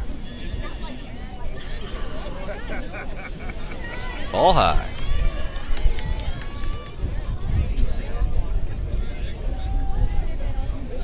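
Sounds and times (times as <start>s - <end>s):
players and spectators calling out: 0.0s - 7.3s.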